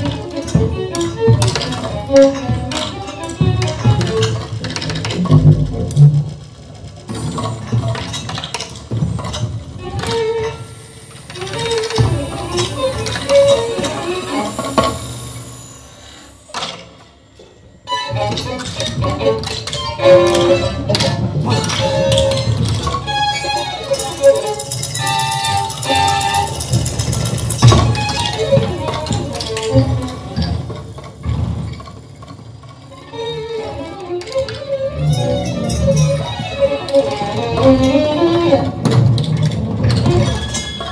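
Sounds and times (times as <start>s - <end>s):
bowed violin tones: 0.0s - 6.4s, 8.9s - 16.9s, 17.8s - 31.3s, 32.9s - 40.9s.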